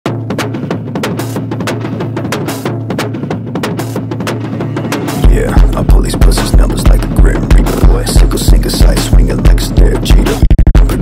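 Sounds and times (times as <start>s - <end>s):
fast repeating drum pattern: 0.1s - 11.0s
held low bass note: 4.6s - 8.3s.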